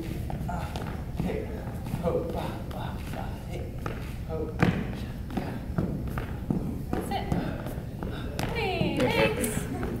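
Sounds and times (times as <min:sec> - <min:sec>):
dance shoes tapping on hardwood floor: 0:00.0 - 0:10.0.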